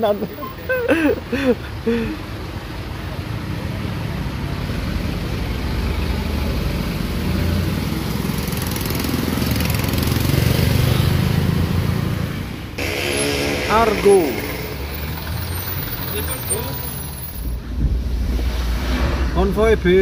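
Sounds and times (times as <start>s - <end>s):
diesel engines rumbling: 0.0s - 20.0s.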